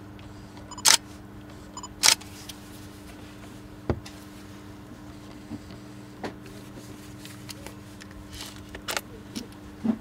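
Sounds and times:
camera focus beep: 0.7 - 1.0.

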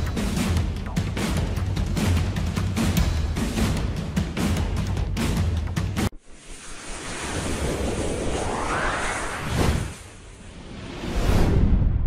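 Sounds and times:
whoosh rising in pitch: 6.1 - 11.9.

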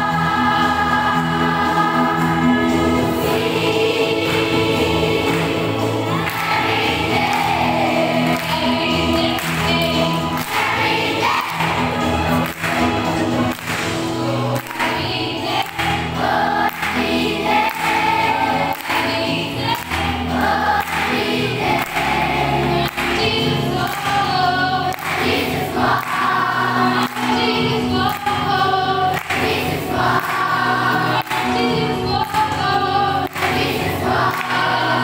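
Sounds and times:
children's choir singing: 0.0 - 35.0.

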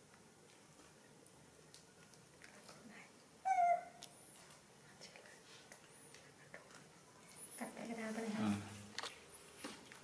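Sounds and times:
baby monkey high-pitched call: 3.4 - 4.0.

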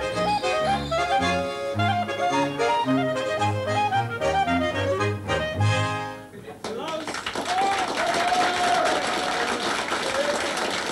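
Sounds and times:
audience clapping: 6.6 - 10.9.

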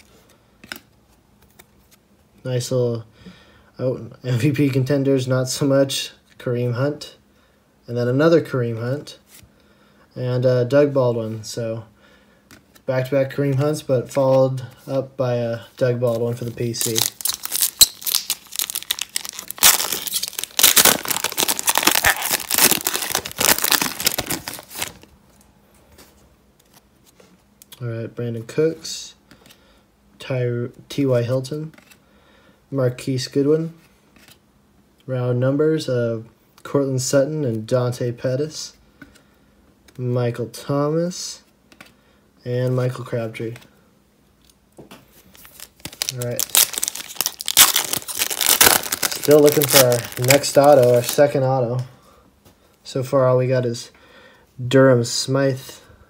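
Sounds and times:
foil wrapper tearing and crinkling: 16.7 - 25.0, 45.4 - 51.2.

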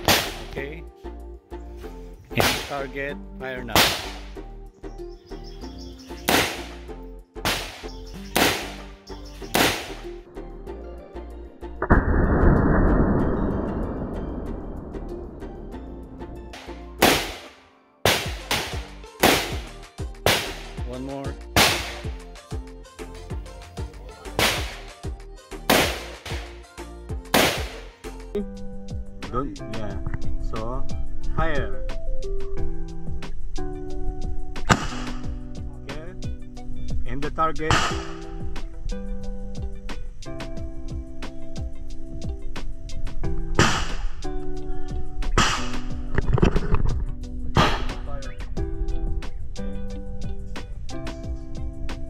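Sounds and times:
background music: 0.0 - 52.0
rifle shots: 7.4 - 7.8, 8.4 - 8.8, 16.6 - 19.7, 21.6 - 22.2, 24.4 - 24.9, 25.7 - 26.5, 27.3 - 27.8.

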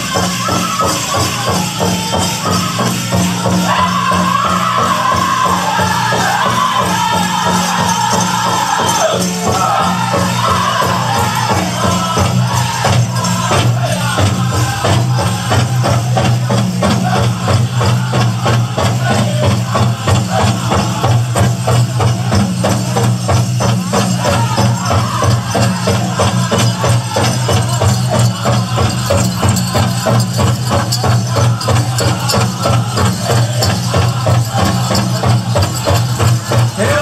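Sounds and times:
big drum beating: 0.0 - 37.0
voices singing: 0.0 - 37.0
jingle dress cones rattling: 22.6 - 37.0.

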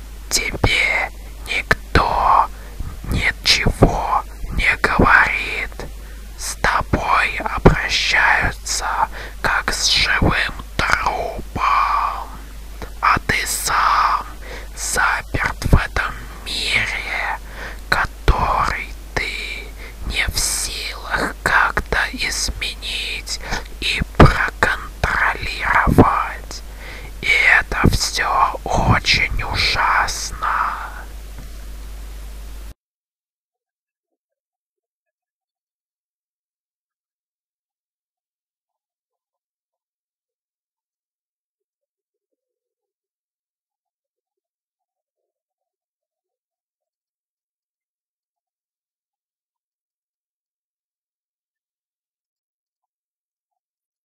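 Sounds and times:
person whispering: 0.3 - 31.2.

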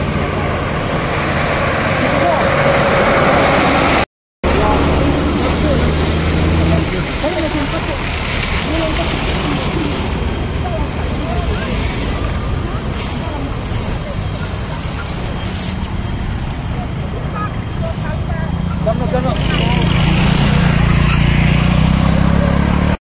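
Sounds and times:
road traffic passing: 0.0 - 23.0
vehicle engine hum approaching: 0.0 - 23.0.

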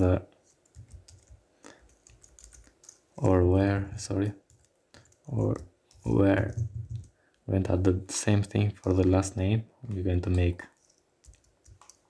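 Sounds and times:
keyboard typing: 0.6 - 3.3, 4.2 - 7.2, 10.3 - 12.0.

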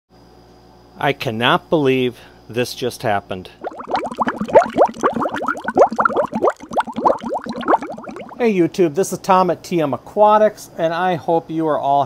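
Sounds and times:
water bubbling: 3.5 - 8.4.

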